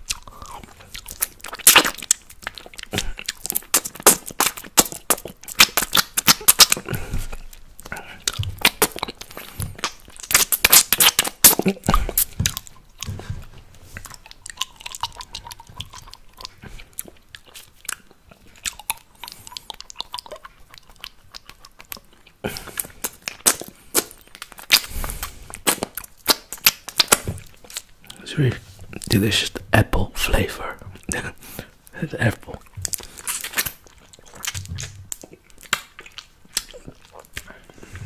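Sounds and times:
lip and tongue smacks: 0.0 - 28.2, 31.0 - 38.0
licking and sucking a lollipop: 0.0 - 29.4, 31.0 - 38.0.

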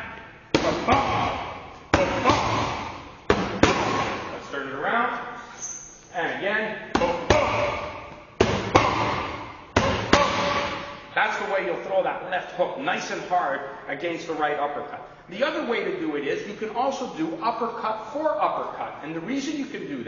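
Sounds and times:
boxing gloves smacking mitts: 0.6 - 4.3, 7.0 - 11.0.

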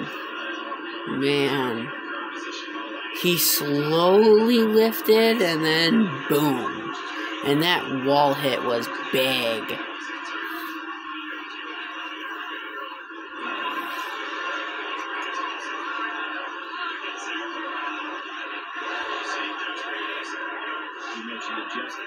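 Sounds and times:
television audio through small speakers: 0.0 - 22.0.

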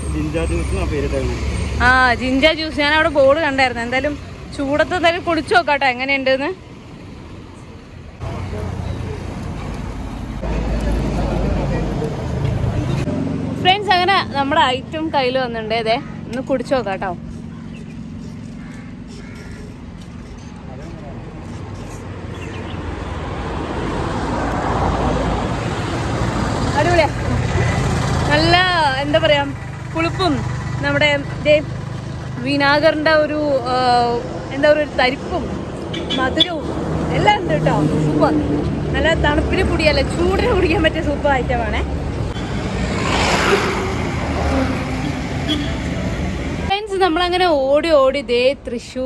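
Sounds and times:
road traffic: 0.0 - 49.0
woman talking: 13.6 - 17.2, 26.7 - 27.7, 28.3 - 31.7, 32.4 - 35.5, 36.1 - 41.9, 46.7 - 49.0
large vehicle rumbling past: 22.2 - 35.7, 36.6 - 46.7.

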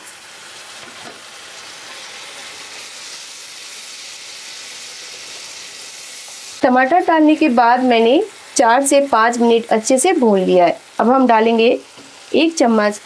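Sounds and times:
masala sizzling in oil: 0.0 - 13.0.

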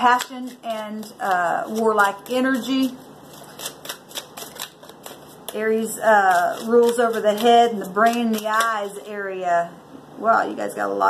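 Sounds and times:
cards being shuffled: 0.0 - 9.0.

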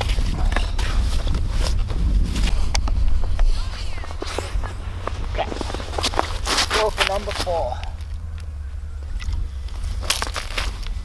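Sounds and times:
snow and ice crunching: 0.0 - 11.0
wind rumble on microphone: 0.0 - 11.0.

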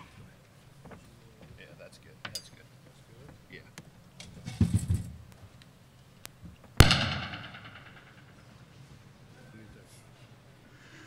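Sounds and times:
sharp bang ringing in a hall: 6.8 - 8.3.

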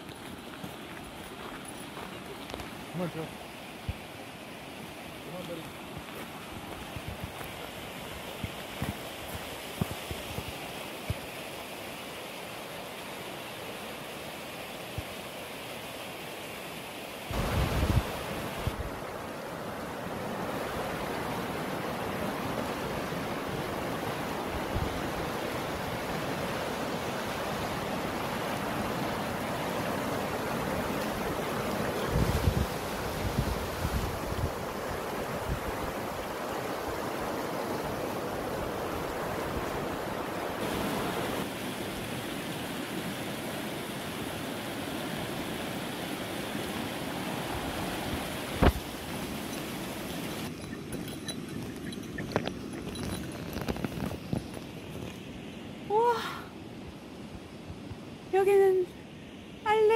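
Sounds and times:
river rushing over stones: 0.0 - 57.2
wind buffeting microphone: 17.3 - 19.0, 30.4 - 37.0.

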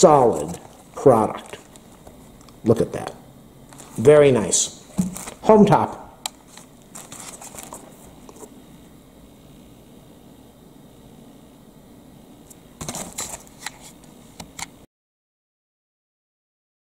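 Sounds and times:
faint room hum: 0.0 - 14.9
packaging rustling and clicking: 4.9 - 5.4, 6.3 - 8.5, 12.8 - 14.7.

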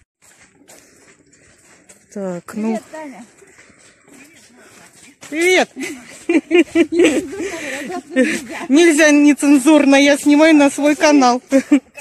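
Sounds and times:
woman's voice: 2.1 - 3.4, 7.1 - 11.8.

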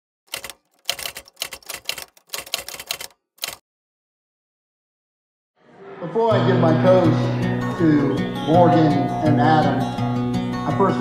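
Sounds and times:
typewriter keys clicking: 0.3 - 3.6.

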